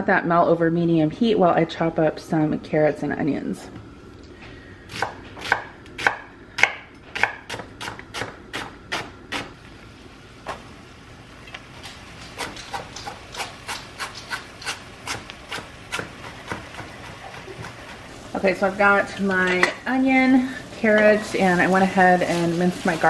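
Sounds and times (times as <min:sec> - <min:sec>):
knife chopping on wooden board: 0:12.4 - 0:17.9.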